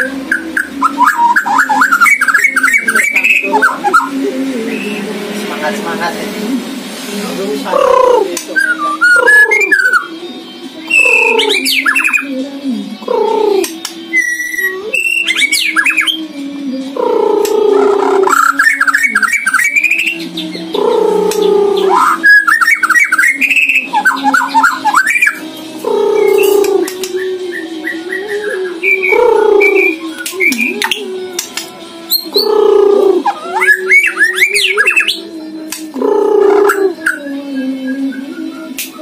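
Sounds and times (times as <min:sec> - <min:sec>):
songbird singing varied phrases: 0:00.0 - 0:05.1, 0:07.6 - 0:39.0.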